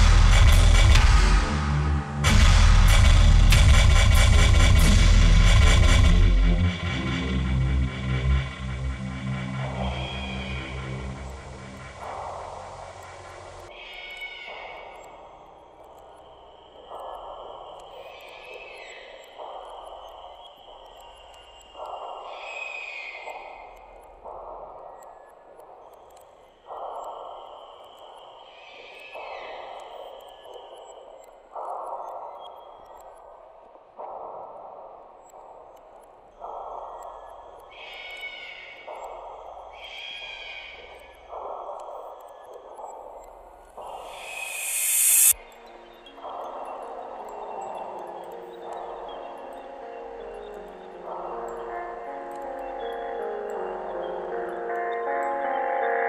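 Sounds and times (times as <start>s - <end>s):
filtered noise swells: 0.0s - 3.7s, 43.8s - 45.8s
high falling whistle-like tones: 43.8s - 45.4s
thin held tone: 43.9s - 45.4s.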